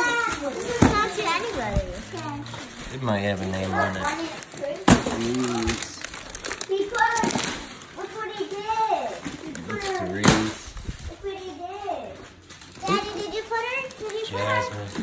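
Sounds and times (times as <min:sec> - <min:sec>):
children chattering excitedly: 0:00.0 - 0:10.2, 0:10.8 - 0:15.0.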